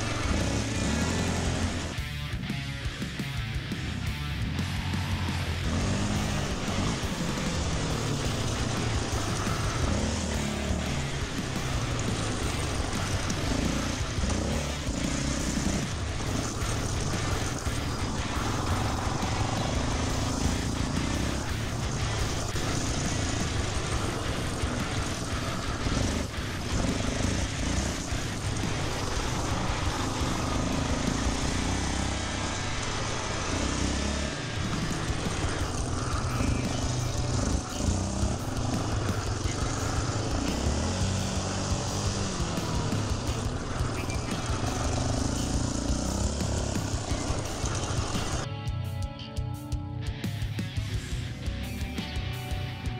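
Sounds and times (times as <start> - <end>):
quad engine revving: 0.0 - 48.5.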